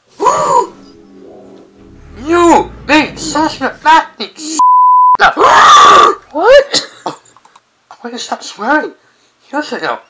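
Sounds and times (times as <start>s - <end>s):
censor bleep: 4.6s - 5.2s.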